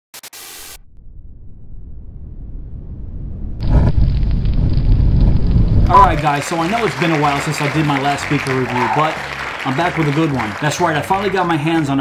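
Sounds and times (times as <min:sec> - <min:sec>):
low rumble breaking into boom: 0:00.8 - 0:06.3.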